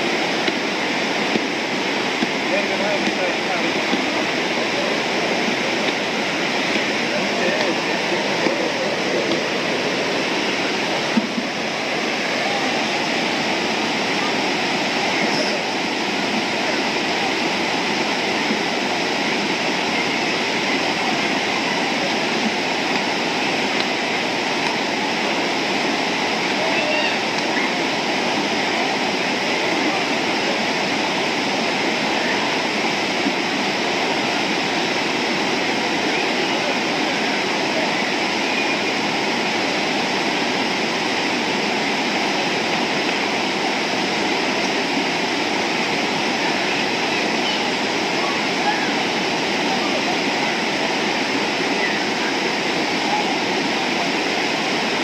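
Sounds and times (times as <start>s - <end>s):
river rapids rushing over rocks: 0.0s - 55.0s.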